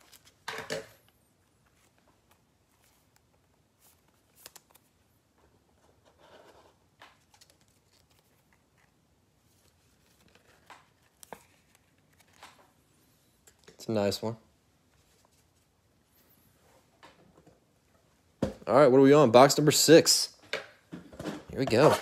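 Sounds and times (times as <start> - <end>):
card packaging rustling: 0.0 - 12.8.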